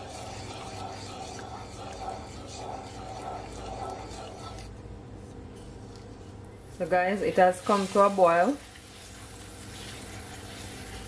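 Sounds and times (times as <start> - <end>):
wooden spoon scraping a pan: 0.0 - 11.0.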